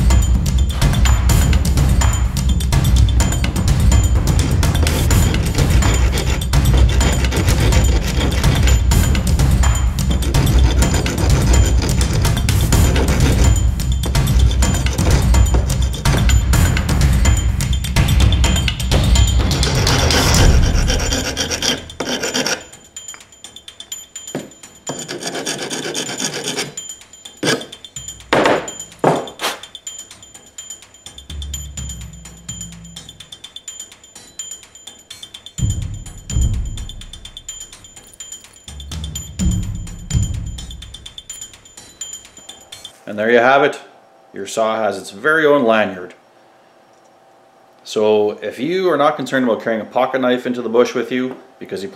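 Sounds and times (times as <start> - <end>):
abrasive block rubbing: 4.3 - 17.0, 19.2 - 22.8, 24.4 - 27.8.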